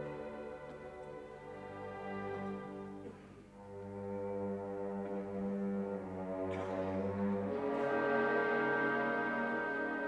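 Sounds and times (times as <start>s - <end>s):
orchestra sustained chords with brass: 0.0s - 10.0s.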